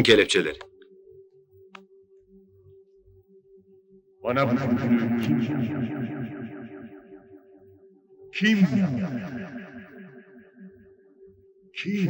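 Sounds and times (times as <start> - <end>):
man's voice with echo: 0.0 - 0.6, 4.3 - 7.1, 8.4 - 10.2, 11.8 - 12.0.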